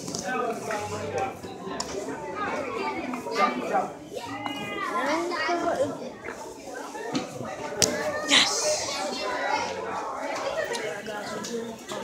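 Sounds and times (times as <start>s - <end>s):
children talking and calling out: 2.2s - 11.0s.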